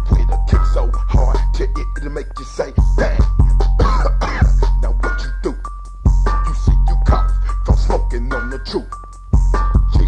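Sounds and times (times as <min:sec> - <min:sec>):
chopped vocal fragments: 0:00.0 - 0:05.6
deep bass: 0:00.0 - 0:10.0
rap beat: 0:00.0 - 0:10.0.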